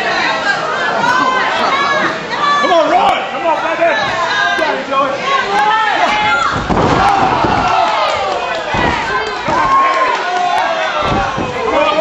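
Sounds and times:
crowd shouting and cheering: 0.0 - 12.0
bodies slamming onto mat: 6.5 - 7.9, 11.0 - 11.9.

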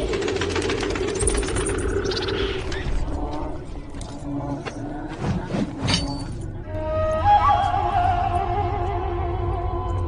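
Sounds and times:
fast mechanical rattle: 0.0 - 2.1.

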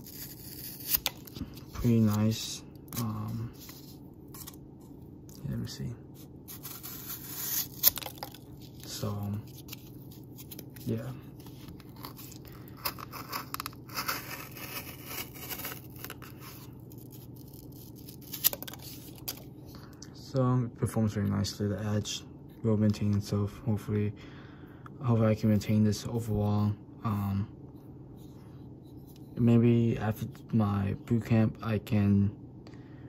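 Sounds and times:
knife slicing through cardboard: 6.5 - 7.9.

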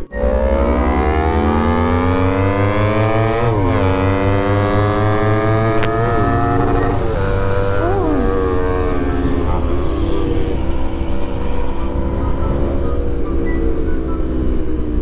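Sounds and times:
low engine throb: 0.0 - 15.0
motorcycle engine revving: 0.0 - 15.0.

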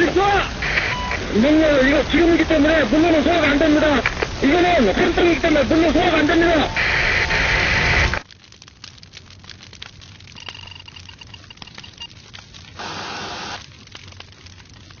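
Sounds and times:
spraying water rushing: 0.0 - 8.2, 12.6 - 13.8
faint crackles and clicks: 0.0 - 15.0.

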